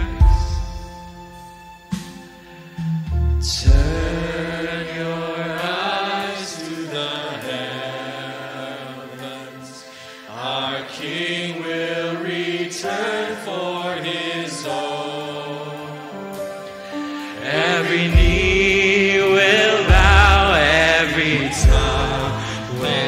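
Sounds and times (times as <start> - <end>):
keyboard: 0.0 - 23.0
worship band playing slow song: 0.0 - 23.0
voices holding long notes: 3.4 - 23.0.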